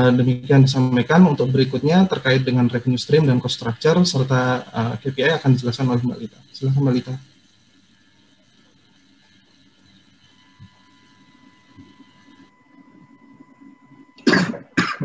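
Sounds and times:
man coughing: 0:14.2 - 0:15.0.

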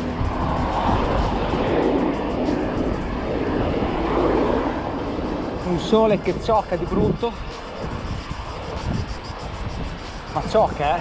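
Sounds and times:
car traffic: 0:00.0 - 0:11.0
wind on microphone: 0:00.0 - 0:11.0.

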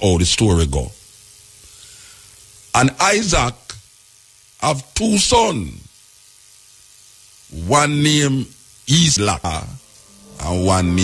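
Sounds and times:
man talking: 0:00.0 - 0:01.0, 0:07.5 - 0:11.0
background hiss: 0:00.0 - 0:11.0
faint hum: 0:00.0 - 0:11.0.

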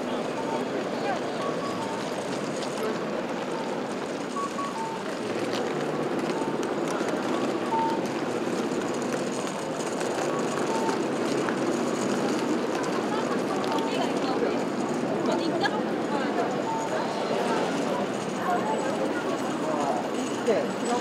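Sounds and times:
background traffic: 0:00.0 - 0:21.0
pedestrians chattering: 0:00.0 - 0:21.0.

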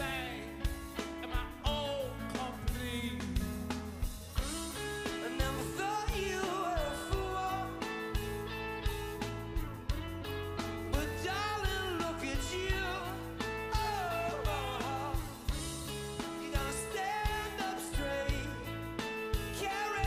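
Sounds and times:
male lead vocal: 0:00.0 - 0:03.8, 0:04.6 - 0:08.4, 0:10.9 - 0:20.0
electric guitar: 0:00.0 - 0:20.0
steady drum beat: 0:00.0 - 0:20.0.

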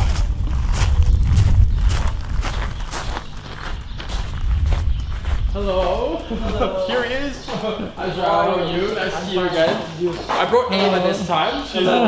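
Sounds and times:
steady low rumble: 0:00.0 - 0:09.5
footsteps on gravel: 0:00.0 - 0:10.6.

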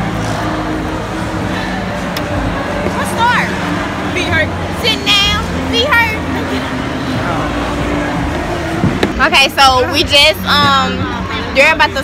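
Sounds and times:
faint crowd chatter: 0:00.0 - 0:12.0
low mechanical hum: 0:00.0 - 0:12.0.

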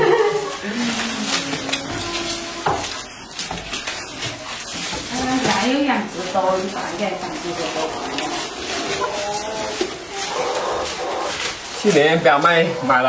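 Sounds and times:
goats rustling and crunching leaves: 0:00.0 - 0:13.0.

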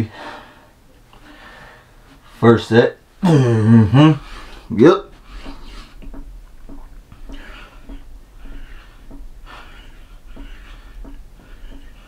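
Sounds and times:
man breathing hard: 0:00.0 - 0:02.1, 0:07.2 - 0:12.0
faint soft ticks: 0:05.4 - 0:12.0.

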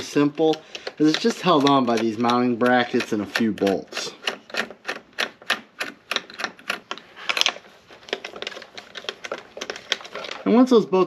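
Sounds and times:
ratcheting socket driver clicking: 0:00.4 - 0:07.0.

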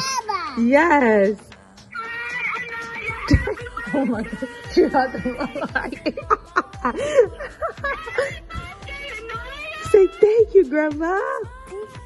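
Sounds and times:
music from small phone speaker: 0:00.9 - 0:12.0.

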